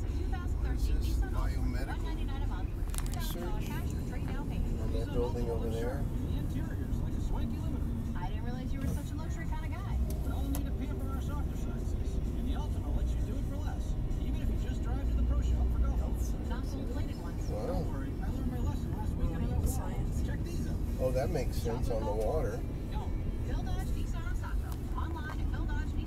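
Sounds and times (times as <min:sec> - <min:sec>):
car road and engine rumble: 0:00.0 - 0:26.0.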